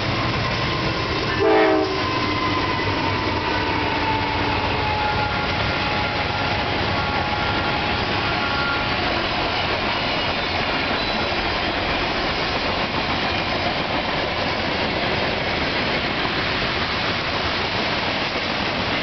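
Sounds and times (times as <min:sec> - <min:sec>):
freight train wheels rumbling on rails: 0:00.0 - 0:19.0.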